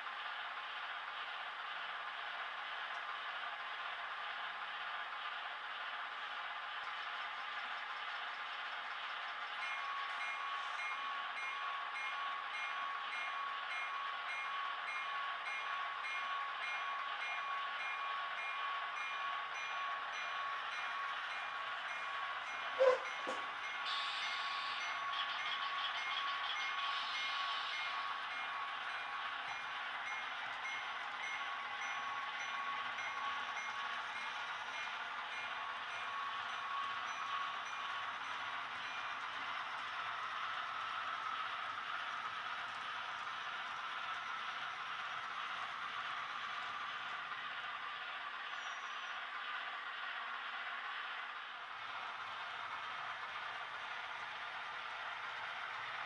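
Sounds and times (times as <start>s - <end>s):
model train cars rolling on track: 0.0s - 56.0s.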